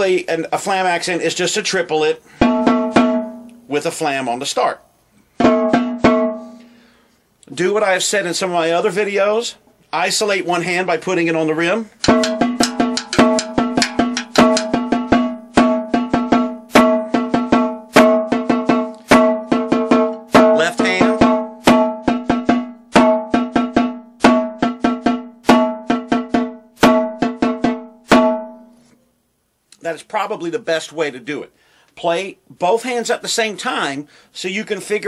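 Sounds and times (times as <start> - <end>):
snare drum flams: 12.0 - 28.4.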